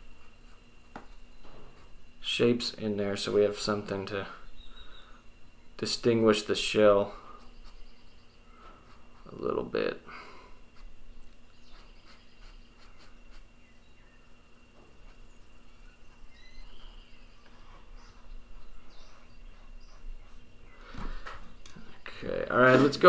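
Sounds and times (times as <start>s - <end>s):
steady low hum: 0.0s - 23.0s
pen scratching on paper: 8.8s - 9.4s, 11.6s - 13.5s, 16.1s - 20.5s.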